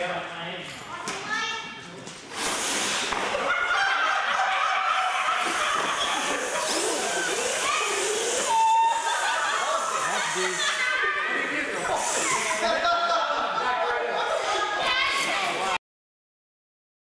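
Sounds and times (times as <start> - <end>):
voices: 3.3 - 15.8
toy truck motor and tyres rushing: 5.2 - 12.6.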